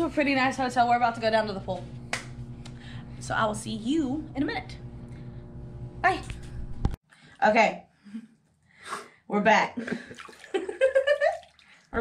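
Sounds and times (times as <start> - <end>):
bath water sloshing and splashing: 9.8 - 12.0.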